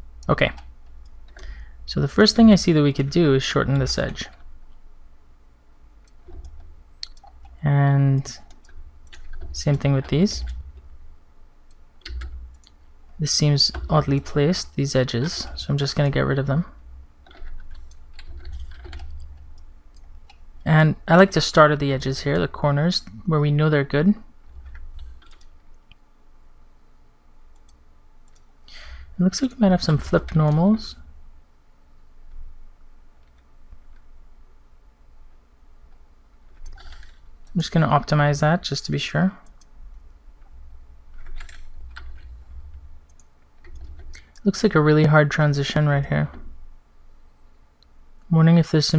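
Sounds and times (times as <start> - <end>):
low steady hum: 0.0 - 48.9
computer keyboard and mouse clicks: 6.0 - 7.6, 8.4 - 10.8, 11.7 - 12.8, 17.2 - 20.4, 24.5 - 26.0, 36.5 - 37.6, 41.1 - 42.4, 43.0 - 44.5.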